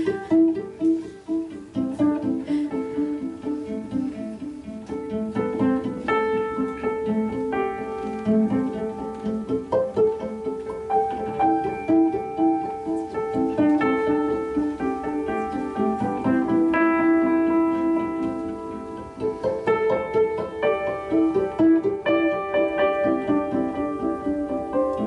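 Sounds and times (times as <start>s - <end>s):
cello and piano piece: 0.0s - 25.0s.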